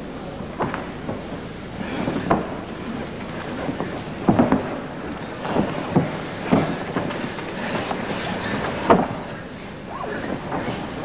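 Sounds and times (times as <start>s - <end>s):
arena crowd noise: 0.0s - 11.0s
single voices calling out: 9.4s - 11.0s.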